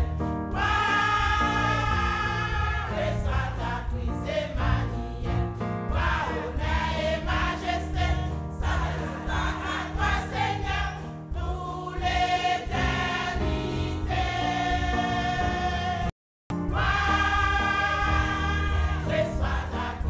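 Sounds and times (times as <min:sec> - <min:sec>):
women's choir singing a hymn: 0:00.0 - 0:16.1, 0:16.7 - 0:20.0.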